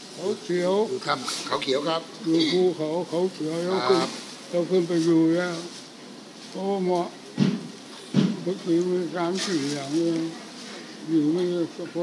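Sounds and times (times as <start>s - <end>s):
old man talking: 0.1s - 5.8s, 6.5s - 7.1s, 8.4s - 10.4s, 11.0s - 12.0s.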